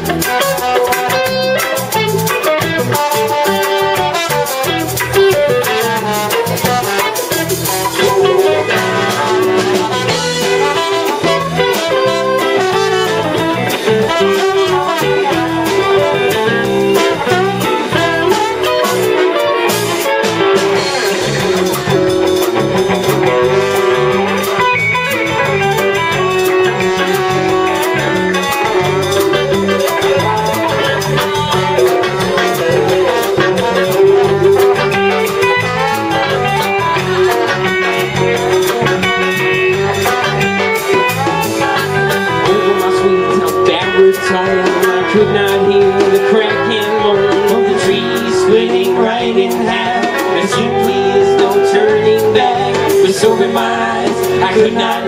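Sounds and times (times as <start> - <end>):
bass line: 0.0 - 55.0
drum kit: 0.0 - 55.0
electric guitars: 0.0 - 55.0.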